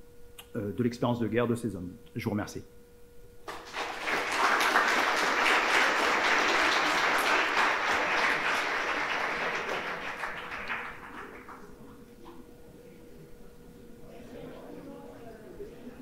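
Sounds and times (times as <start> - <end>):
audience applauding: 3.5 - 12.1.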